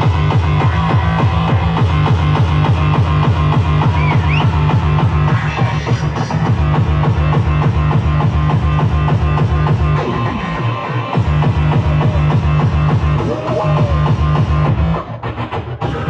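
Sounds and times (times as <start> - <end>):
live band music with heavy bass: 0.0 - 16.0.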